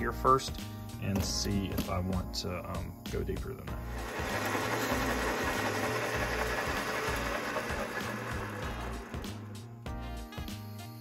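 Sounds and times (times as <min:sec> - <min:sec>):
background music: 0:00.0 - 0:11.0
metal lathe cutting: 0:03.9 - 0:09.6.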